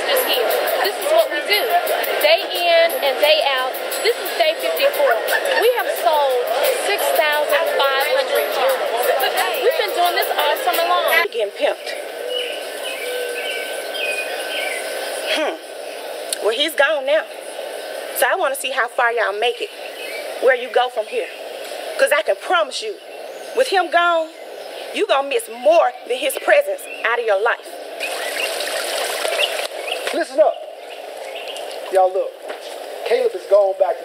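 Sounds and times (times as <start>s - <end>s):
background hiss: 0.0s - 34.0s
birds chirping: 0.0s - 34.0s.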